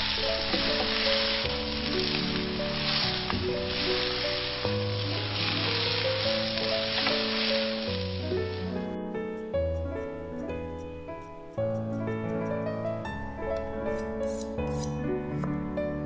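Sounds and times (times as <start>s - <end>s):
food sizzling in a wok: 0.0s - 8.8s
slow background music: 0.0s - 16.0s.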